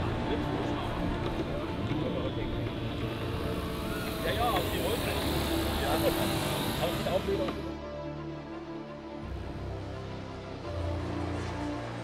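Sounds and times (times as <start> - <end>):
people talking: 4.2 - 7.6.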